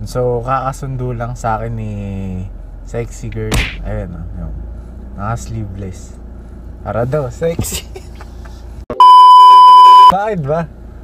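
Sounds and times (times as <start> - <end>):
faint car cabin hum: 0.0 - 11.0
steady test tone beep: 9.0 - 10.2.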